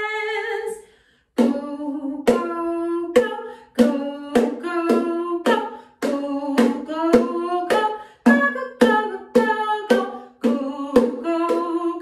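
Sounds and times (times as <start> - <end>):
woman singing: 0.0 - 12.0
sharp percussive beats: 2.3 - 11.8.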